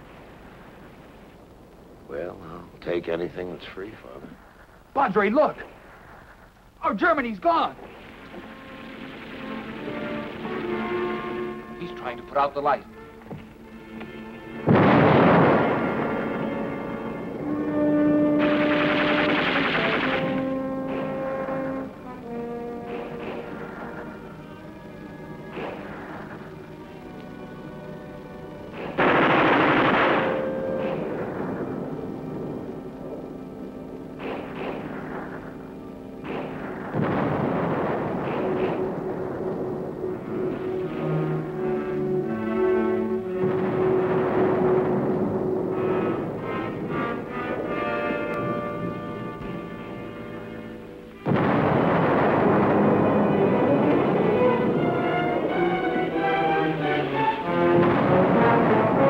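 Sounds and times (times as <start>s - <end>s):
shell explosions: 0.0s - 59.0s
orchestral music with brass: 8.0s - 59.0s.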